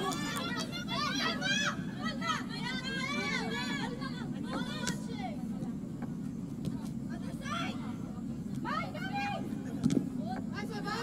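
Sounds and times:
footballers shouting: 0.0 - 5.3
steady low hum: 0.0 - 11.0.

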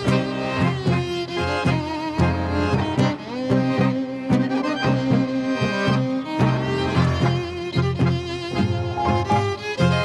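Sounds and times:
tango music with bowed strings: 0.0 - 10.0.

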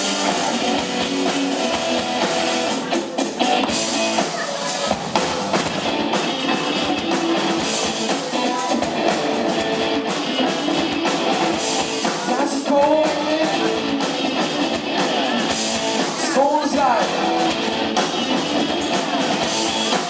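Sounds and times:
rock band playing live: 0.0 - 20.0.

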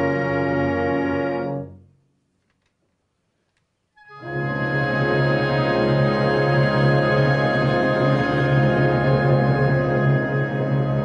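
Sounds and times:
wind band sustained chord: 4.1 - 11.0.

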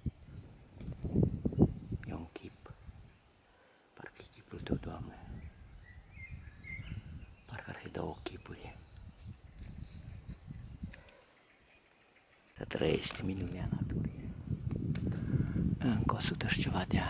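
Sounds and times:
man whispering: 2.0 - 2.9, 3.9 - 5.5, 7.4 - 8.9, 12.6 - 14.6, 15.6 - 17.0
breathing: 3.5 - 4.0, 15.1 - 15.7.

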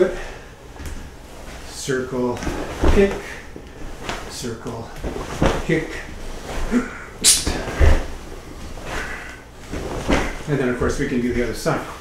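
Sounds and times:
fabric rustle: 0.6 - 6.8, 7.4 - 12.0
short sharp hiss: 7.2 - 7.7.

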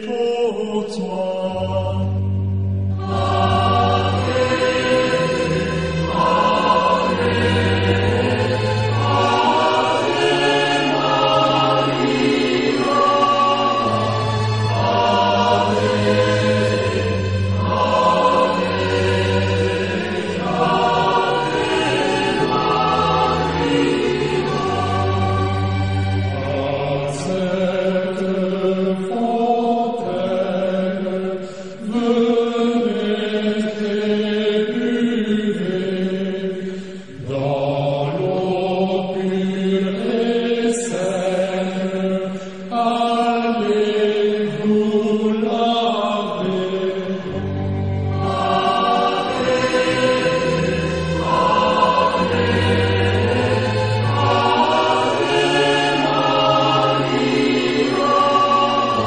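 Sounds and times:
choir singing slow chant: 0.0 - 59.0.

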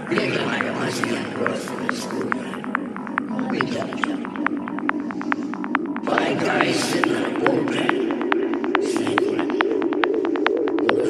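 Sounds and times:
psytrance music: 0.0 - 11.0
warbling synth line: 0.0 - 11.0.

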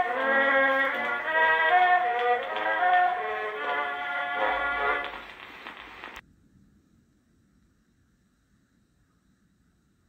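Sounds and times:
band playing on old phonograph: 0.0 - 6.2
faint hiss: 0.0 - 10.0.

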